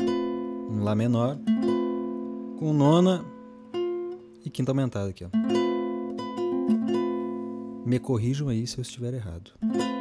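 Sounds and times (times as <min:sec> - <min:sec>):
classical guitar chord plucked: 0:00.0 - 0:08.5, 0:09.6 - 0:10.0.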